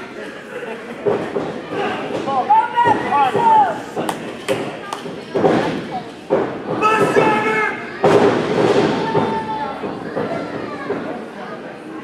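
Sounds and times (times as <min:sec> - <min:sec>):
spectators yelling: 0:06.8 - 0:07.9.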